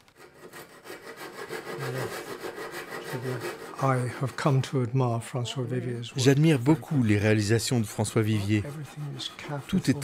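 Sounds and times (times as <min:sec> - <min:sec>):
handsaw cutting plywood: 0:00.0 - 0:04.8, 0:05.4 - 0:10.0.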